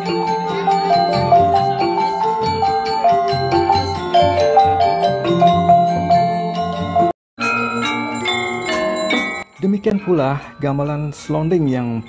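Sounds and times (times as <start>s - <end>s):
gong ensemble playing: 0.0s - 7.1s.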